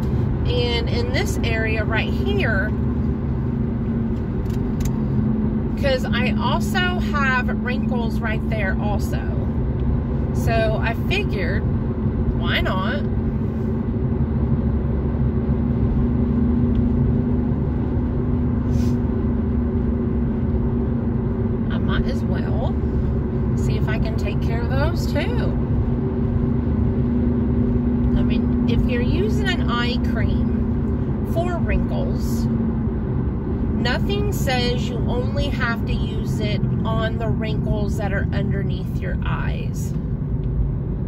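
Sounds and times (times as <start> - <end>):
car road and engine noise: 0.0 - 41.0.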